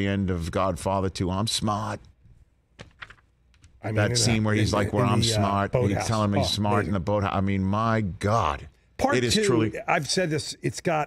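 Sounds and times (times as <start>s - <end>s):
man talking: 3.8s - 11.0s.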